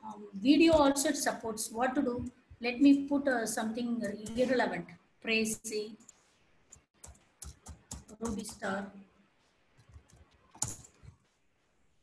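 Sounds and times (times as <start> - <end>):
computer keyboard typing: 6.0 - 8.8, 9.8 - 11.2.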